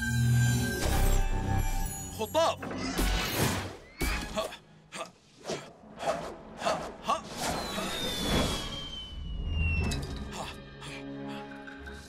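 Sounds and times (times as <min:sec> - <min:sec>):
descending cartoon whistle: 0:07.4 - 0:10.1
soundtrack music with held notes: 0:09.9 - 0:12.0.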